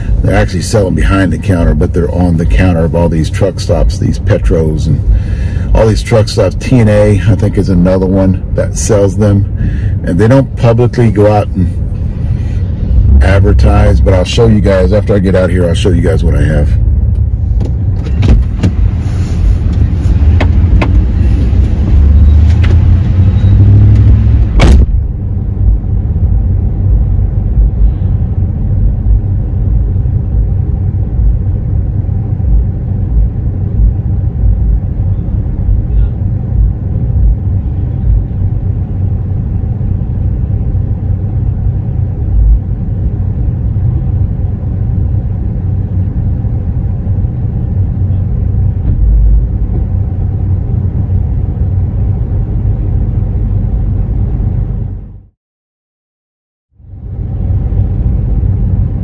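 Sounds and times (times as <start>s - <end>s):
car engine idling: 0.0s - 55.3s.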